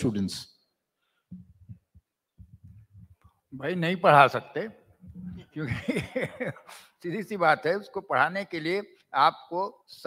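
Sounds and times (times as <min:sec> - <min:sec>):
microphone handling thumps: 0:01.3 - 0:03.2.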